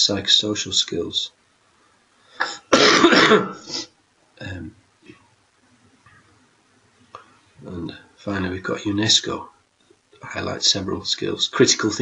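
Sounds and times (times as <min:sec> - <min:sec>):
man coughing: 0:02.4 - 0:03.8.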